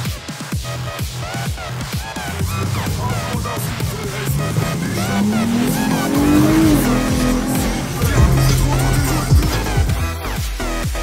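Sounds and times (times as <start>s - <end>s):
electronic dance music: 0.0s - 11.0s
car engine accelerating: 0.7s - 11.0s.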